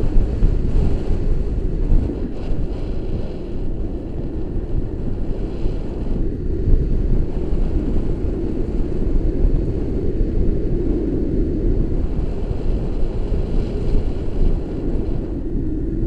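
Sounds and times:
wind buffeting a microphone: 0:00.0 - 0:16.0.

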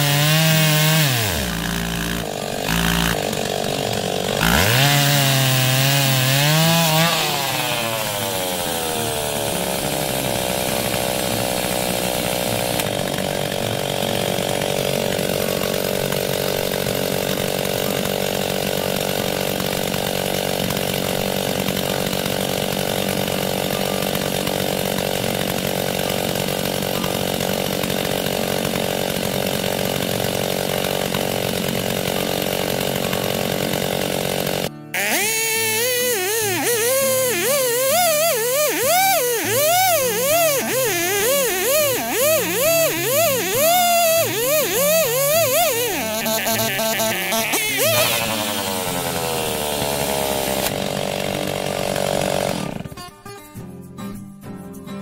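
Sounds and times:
chainsaw running: 0:00.0 - 0:53.1.

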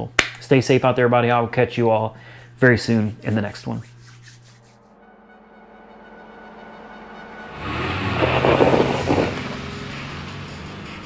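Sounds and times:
music: 0:02.4 - 0:11.0
car engine revving: 0:07.4 - 0:11.0.

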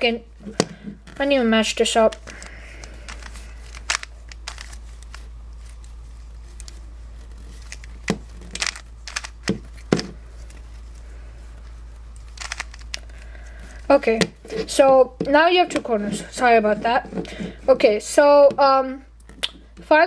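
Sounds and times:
puzzle cube plastic clicks: 0:02.0 - 0:05.2, 0:07.6 - 0:10.0, 0:12.4 - 0:13.1.

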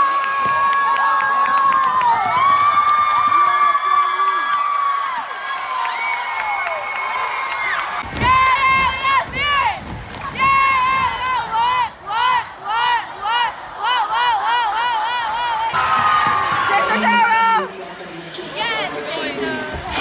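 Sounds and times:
crowd cheering and screaming: 0:00.0 - 0:17.8
rhythmic shouted chant: 0:10.8 - 0:16.8.

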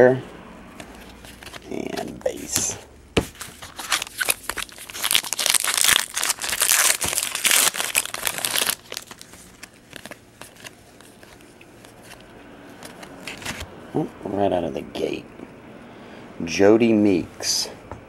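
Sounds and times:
plastic wrapper crinkling and tearing: 0:03.4 - 0:12.2
cards handled with light clicks: 0:09.1 - 0:13.6.

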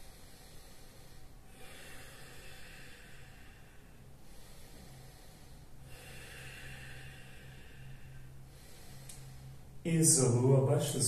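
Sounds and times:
person breathing softly: 0:00.0 - 0:09.8
steady low hum: 0:00.0 - 0:11.0.

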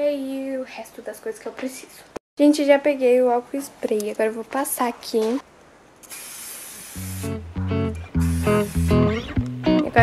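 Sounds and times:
aerosol spray hissing: 0:06.0 - 0:07.4, 0:08.2 - 0:09.3
music with plucked guitar: 0:07.2 - 0:10.0.

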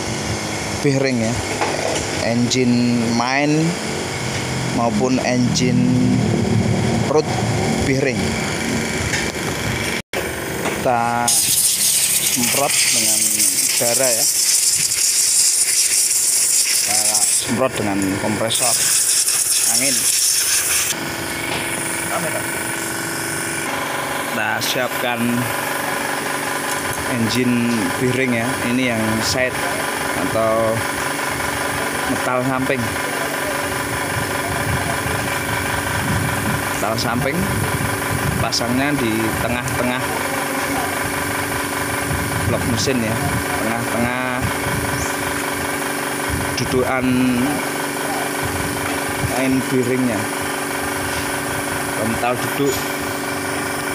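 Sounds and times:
engine running steadily: 0:00.0 - 0:53.9
motor droning: 0:00.0 - 0:53.9
steady mechanical hum: 0:00.0 - 0:53.9
man speaking: 0:04.7 - 0:06.3, 0:06.9 - 0:08.4, 0:12.3 - 0:14.3, 0:16.9 - 0:18.8, 0:22.1 - 0:22.5, 0:24.3 - 0:25.5, 0:27.0 - 0:30.8, 0:42.5 - 0:44.6, 0:49.3 - 0:50.3, 0:52.0 - 0:52.9
compressed air hissing: 0:11.1 - 0:17.6, 0:18.5 - 0:23.8.

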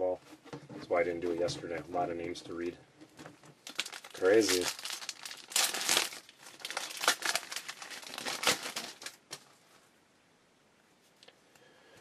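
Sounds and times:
foil wrapper tearing and crinkling: 0:03.6 - 0:09.5.

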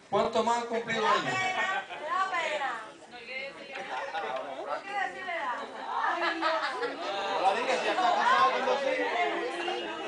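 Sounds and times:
people talking at once: 0:00.9 - 0:10.0.

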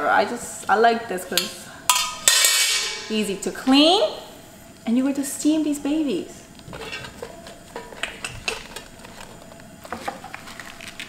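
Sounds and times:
leaves rustling and crinkling: 0:08.6 - 0:11.0.

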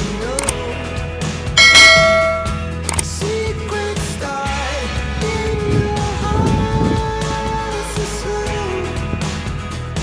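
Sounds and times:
background music: 0:00.0 - 0:10.0
click: 0:00.4 - 0:00.6, 0:01.7 - 0:03.1
notification bell chime: 0:01.6 - 0:02.6.

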